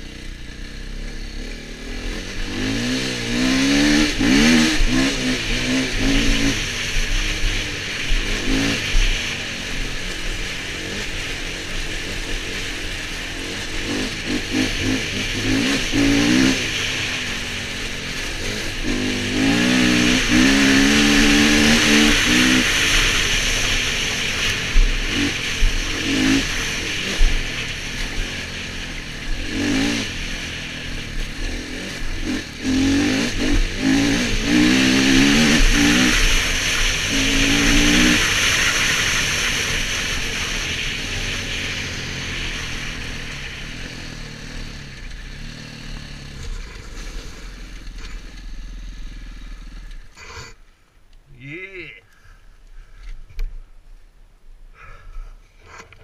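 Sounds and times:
dirt bike engine revving: 0.0 - 50.6.

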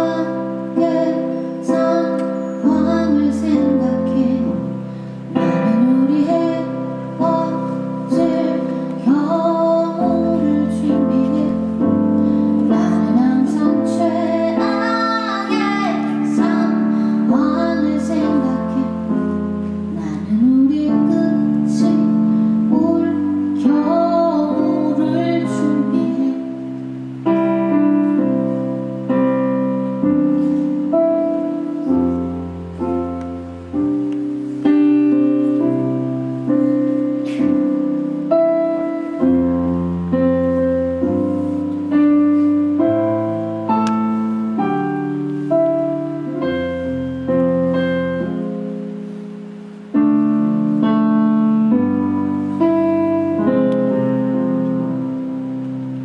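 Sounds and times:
woman singing a slow song: 0.0 - 28.5
instrumental accompaniment: 0.0 - 56.0
piano playing slow chords: 0.0 - 56.0.

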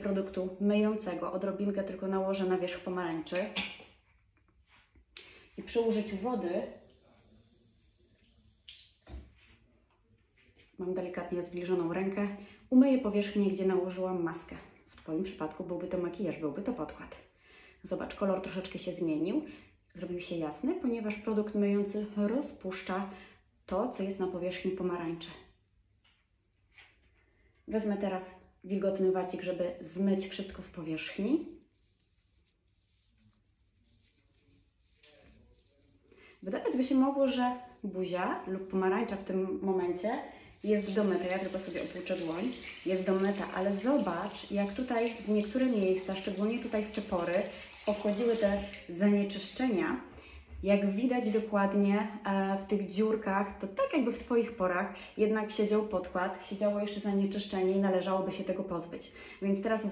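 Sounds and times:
wet fingers rubbing fruit peel: 31.1 - 37.2.

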